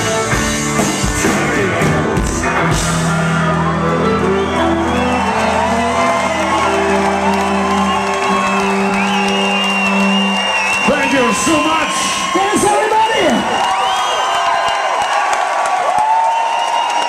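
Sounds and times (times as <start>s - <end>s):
folk-punk band with violin and guitar: 0.0s - 13.6s
crowd cheering and whooping: 2.4s - 17.0s.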